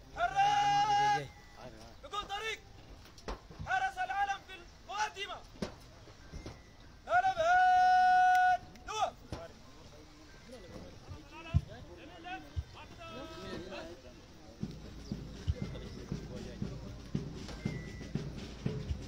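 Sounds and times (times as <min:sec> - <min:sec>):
man shouting drill commands: 0:00.1 - 0:01.3.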